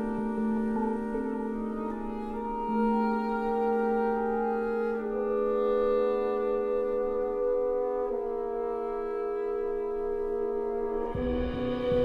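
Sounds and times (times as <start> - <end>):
sustained brass chords: 0.0 - 12.0.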